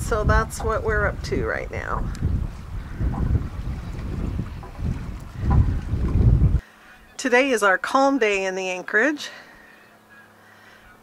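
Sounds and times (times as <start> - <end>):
wind buffeting microphone: 0.0 - 6.6.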